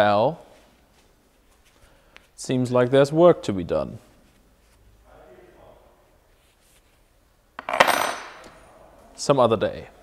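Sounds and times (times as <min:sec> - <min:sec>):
metal parts clattering on workbench: 0:07.6 - 0:08.6.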